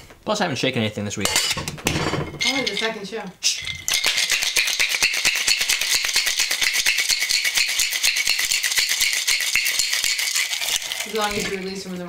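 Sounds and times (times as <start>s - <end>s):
ice rattling in a shaker: 3.9s - 11.9s.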